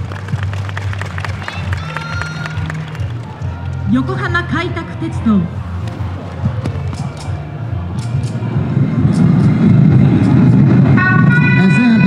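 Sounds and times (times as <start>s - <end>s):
loud low rumbling sound effect: 7.5s - 12.0s.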